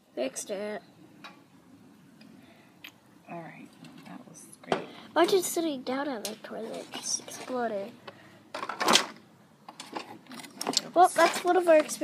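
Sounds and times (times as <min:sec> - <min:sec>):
person speaking: 0:03.3 - 0:08.1, 0:10.7 - 0:12.0.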